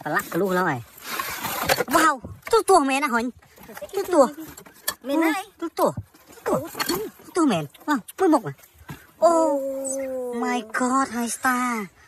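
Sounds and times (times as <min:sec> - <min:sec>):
person exclaiming: 0:09.2 - 0:11.2.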